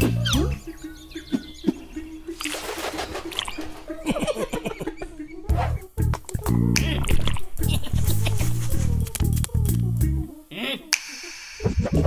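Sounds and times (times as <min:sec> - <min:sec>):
loud cartoon music phrase: 0:00.0 - 0:02.0
bird-like chirps: 0:00.0 - 0:11.7.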